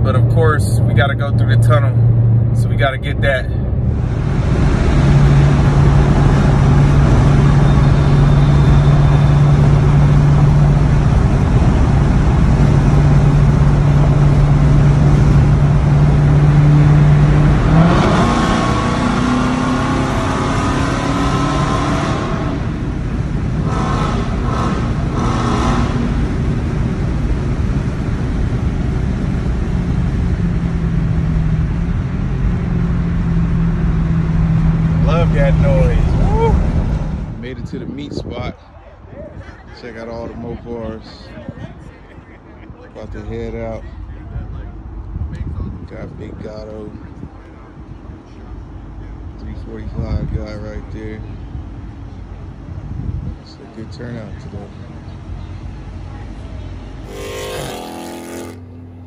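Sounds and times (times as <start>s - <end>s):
car engine and exhaust revving: 0.0s - 37.6s, 50.8s - 59.0s.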